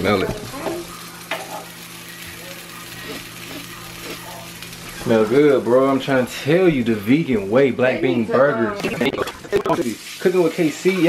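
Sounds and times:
patty sizzling in oil: 0:00.0 - 0:06.1, 0:09.5 - 0:11.0.

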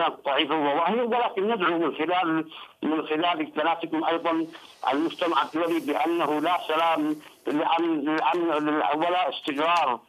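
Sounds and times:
man talking over phone line: 0:00.0 - 0:10.0.

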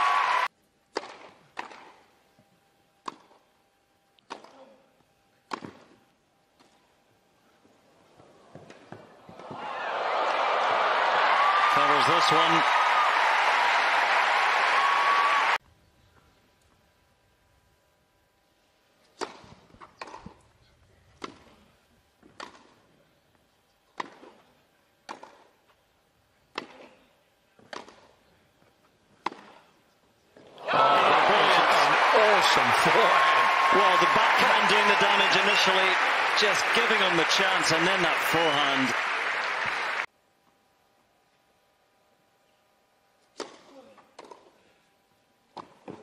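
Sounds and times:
crowd cheering and applauding: 0:00.0 - 0:00.5, 0:09.4 - 0:15.6, 0:30.6 - 0:40.1
racket striking tennis ball: 0:00.9 - 0:02.0, 0:05.5 - 0:05.8, 0:25.1 - 0:25.4, 0:27.7 - 0:28.1, 0:29.2 - 0:29.6, 0:43.4 - 0:44.4.

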